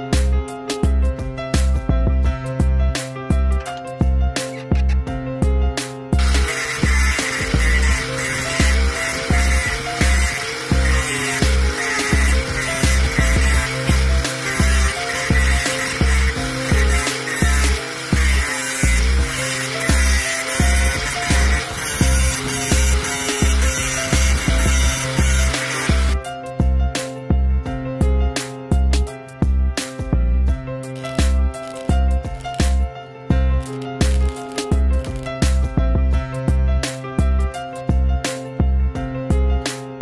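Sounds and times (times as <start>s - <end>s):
angle grinder cutting steel: 6.2s - 26.2s.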